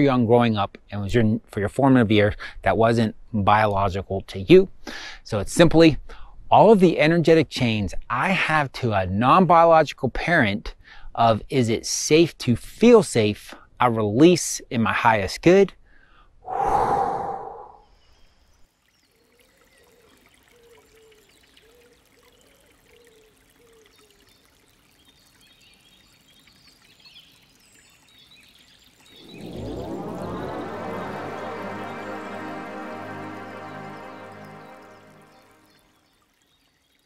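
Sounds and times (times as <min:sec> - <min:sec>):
breath: 0:04.8 - 0:05.2, 0:06.1 - 0:06.4, 0:10.8 - 0:11.2, 0:15.8 - 0:17.9
rising sustained tone effect: 0:16.5 - 0:17.8, 0:29.1 - 0:35.8.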